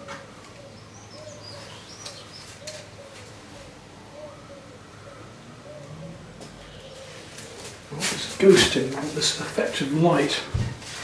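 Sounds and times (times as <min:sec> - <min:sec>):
dove cooing: 0:00.0 - 0:08.0
small bird chirping: 0:00.6 - 0:03.2.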